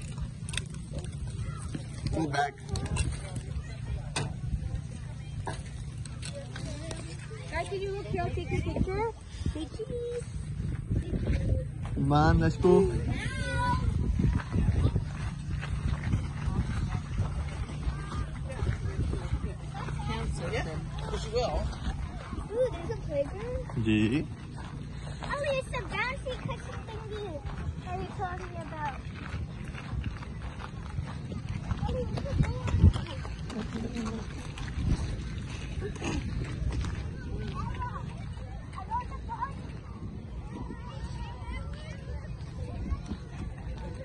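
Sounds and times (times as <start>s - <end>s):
children's voices: 0.0s - 11.9s, 13.0s - 23.8s, 24.6s - 44.0s
footsteps on gravel: 0.0s - 41.5s
wind rumbling on microphone: 0.0s - 44.0s.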